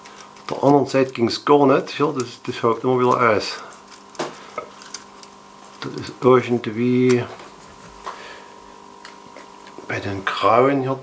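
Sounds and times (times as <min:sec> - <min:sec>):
plastic clicks and scrapes of couplers: 0:02.1 - 0:06.1.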